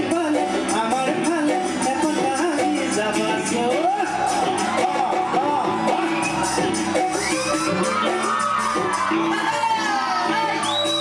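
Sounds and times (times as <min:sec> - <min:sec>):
man singing into microphone: 0:00.0 - 0:05.8
backing band with drums and keyboard: 0:00.0 - 0:11.0.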